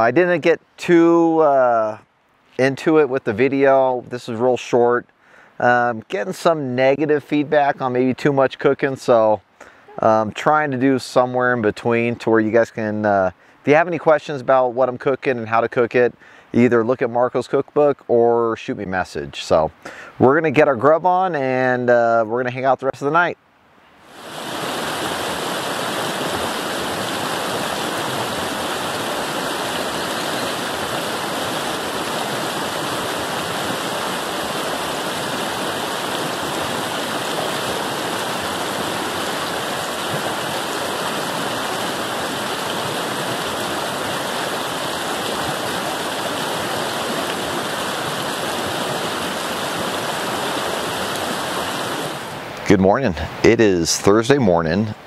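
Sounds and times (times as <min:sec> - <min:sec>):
river rushing over rocks: 0:24.0 - 0:53.6.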